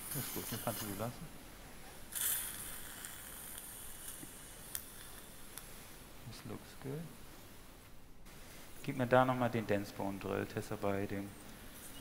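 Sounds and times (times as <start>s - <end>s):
suction tip hissing: 0.0s - 1.1s, 2.1s - 5.8s.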